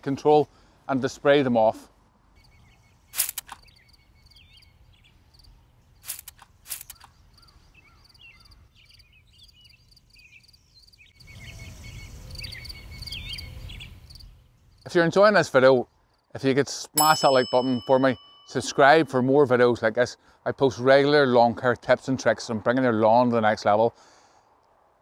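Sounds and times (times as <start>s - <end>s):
birds chirping: 2.3s - 16.2s
spray bottle squirts: 6.0s - 7.1s.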